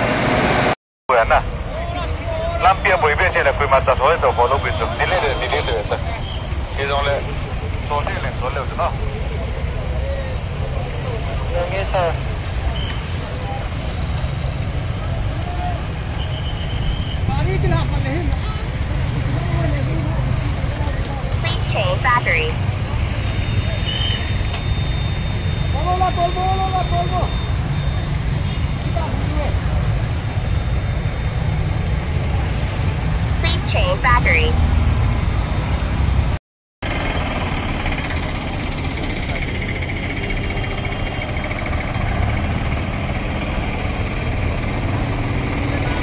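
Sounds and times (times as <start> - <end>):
vehicle engines rumbling: 0.0 - 46.0
people calling out: 21.4 - 22.6.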